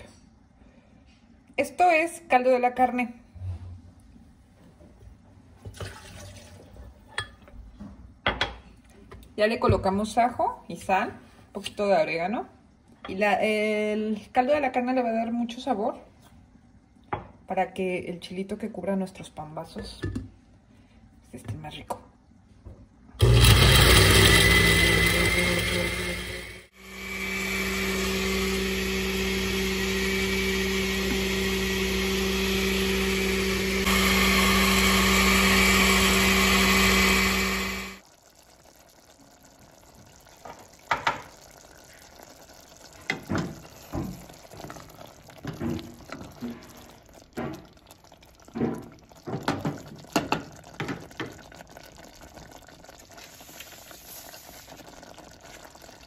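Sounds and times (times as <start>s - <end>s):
blender running: 23.2s - 38.0s
stew simmering with pops: 36.0s - 56.0s.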